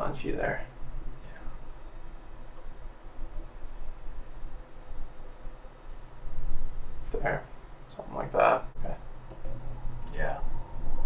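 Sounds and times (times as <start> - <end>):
low room hum with hiss: 0.0 - 11.0.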